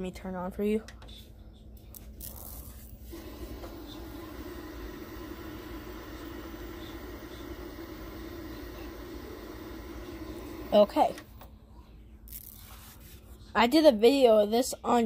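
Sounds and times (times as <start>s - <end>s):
low speaker hum: 1.2s - 12.2s
television switching on crackle: 1.9s - 11.5s
static hiss: 2.2s - 11.2s.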